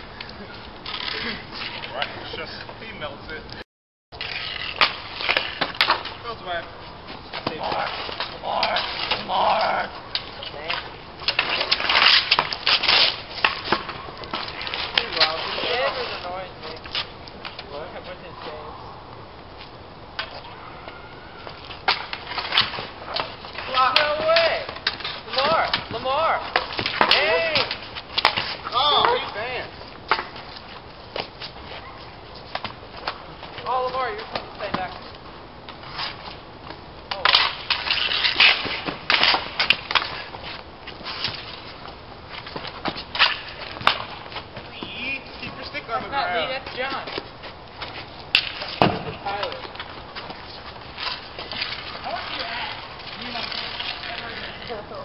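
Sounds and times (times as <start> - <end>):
sticks slapping concrete: 4.2 - 6.7, 7.3 - 18.0, 21.4 - 35.1, 37.1 - 55.0
hockey sticks clacking: 4.2 - 18.3, 21.4 - 55.0.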